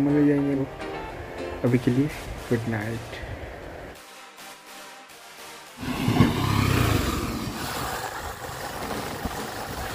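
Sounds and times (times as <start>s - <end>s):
background music: 0.0s - 7.6s
motorcycle riding: 5.8s - 9.9s.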